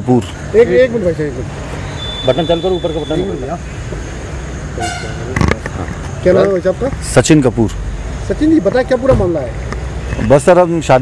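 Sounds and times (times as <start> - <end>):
street noise: 0.0 - 11.0
voices: 0.0 - 11.0
vehicle horn toot: 1.9 - 3.5, 4.8 - 5.4.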